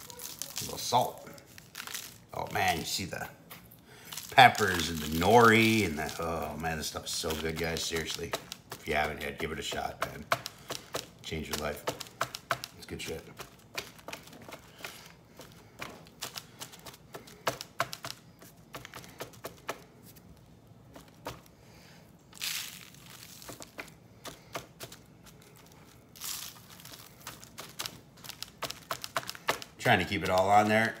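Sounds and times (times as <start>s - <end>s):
spice rub crackling onto paper: 0.0s - 31.0s
hands patting spice onto steaks: 2.4s - 20.0s, 23.2s - 31.0s
paper rustling: 3.6s - 21.5s, 22.3s - 31.0s.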